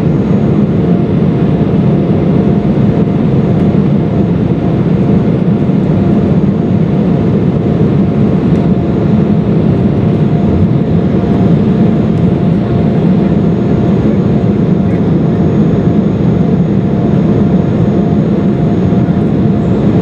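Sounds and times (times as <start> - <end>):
jet engine drone: 0.0 - 20.0.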